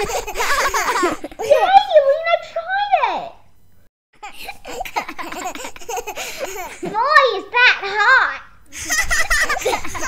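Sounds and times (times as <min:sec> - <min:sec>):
people giggling: 0:00.0 - 0:01.5, 0:08.7 - 0:10.0.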